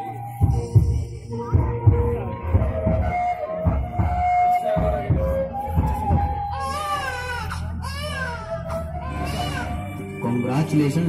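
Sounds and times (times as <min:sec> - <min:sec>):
background music: 0:00.0 - 0:11.0
baby crying: 0:06.5 - 0:10.0.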